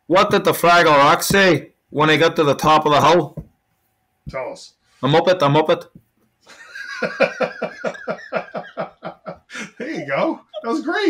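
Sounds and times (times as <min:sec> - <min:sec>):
man laughing: 0:06.5 - 0:11.0.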